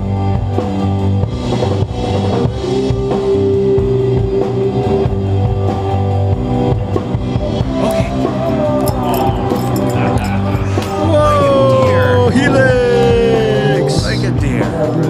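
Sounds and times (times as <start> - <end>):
rock music: 0.0 - 15.0.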